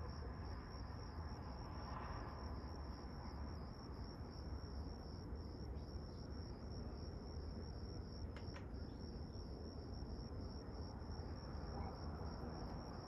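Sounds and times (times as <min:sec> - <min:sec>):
crickets chirping: 0:00.0 - 0:13.0
faint clicks: 0:08.3 - 0:08.8.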